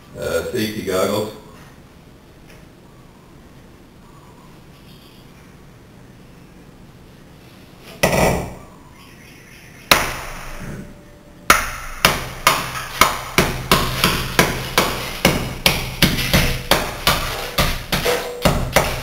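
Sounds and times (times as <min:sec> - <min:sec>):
hammer striking glass block: 0:09.9 - 0:10.4, 0:11.5 - 0:19.0.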